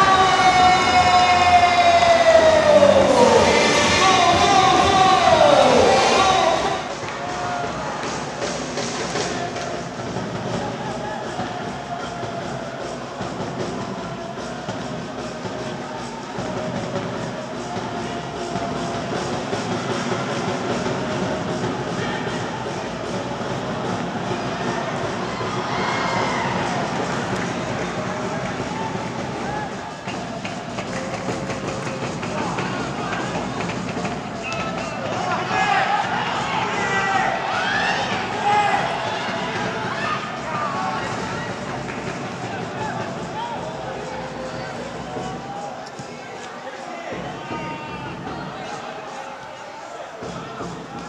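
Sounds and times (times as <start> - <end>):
commentator speaking: 0.0 - 7.1.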